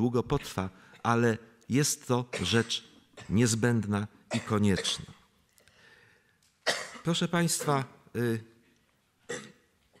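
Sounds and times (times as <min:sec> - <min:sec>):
man speaking into a microphone: 0:00.0 - 0:05.3, 0:07.0 - 0:08.7.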